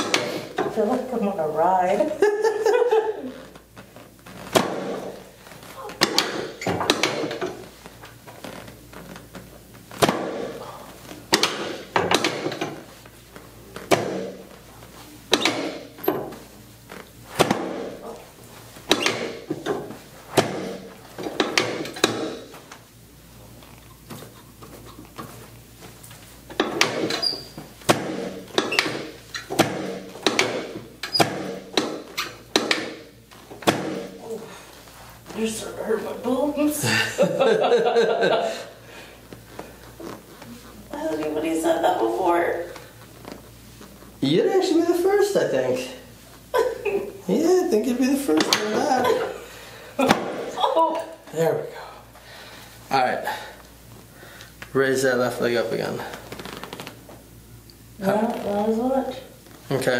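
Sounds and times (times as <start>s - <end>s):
adjusting table thunks and clacks: 5.9s - 7.7s, 11.3s - 12.9s, 18.9s - 22.6s, 26.5s - 34.1s.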